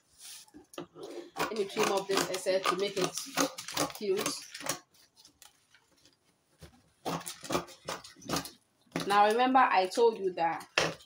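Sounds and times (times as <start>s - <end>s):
scissors snipping paper: 1.4s - 5.6s.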